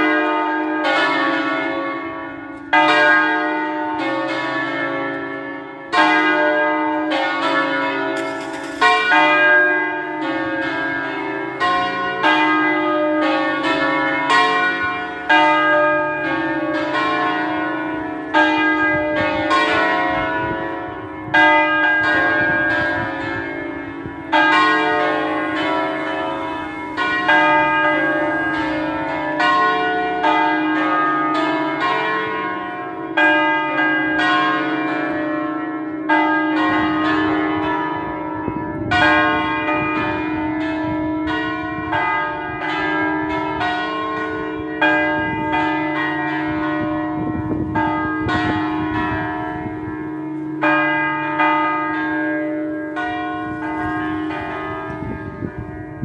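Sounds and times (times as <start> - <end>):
church bells ringing: 0.0 - 56.0.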